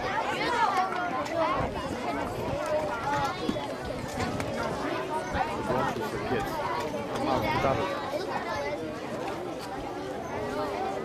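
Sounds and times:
crowd of voices talking: 0.0s - 11.0s.

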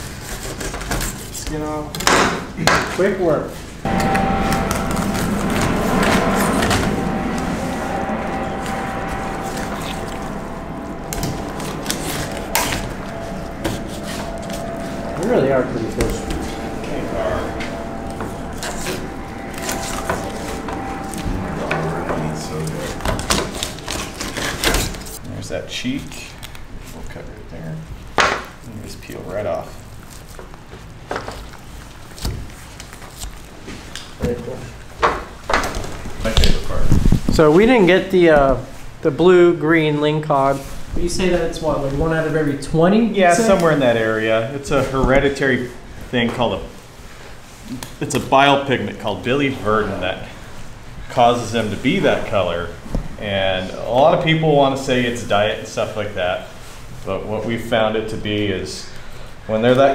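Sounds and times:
low steady hum: 3.8s - 25.3s.

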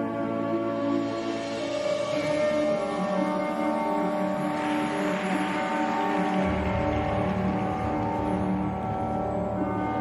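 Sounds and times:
music with sustained notes: 0.0s - 10.0s.

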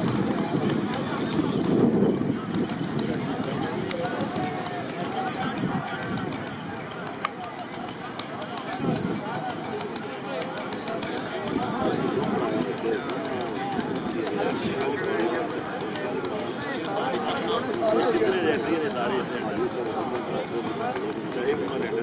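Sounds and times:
men talking and shouting: 0.0s - 22.0s.

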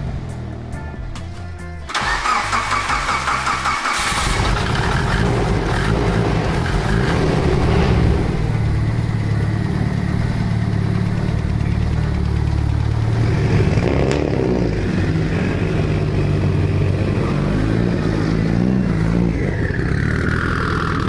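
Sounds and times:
car engine starting and idling: 0.0s - 21.0s.

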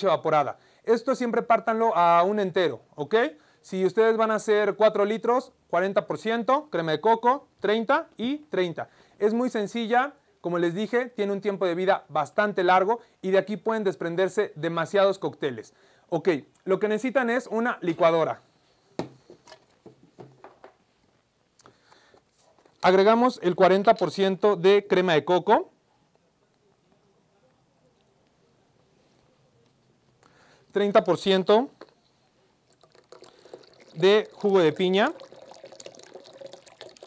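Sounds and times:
light knocks and taps on tabletop: 19.0s - 20.8s
juice pouring into blender jar: 32.6s - 37.0s.

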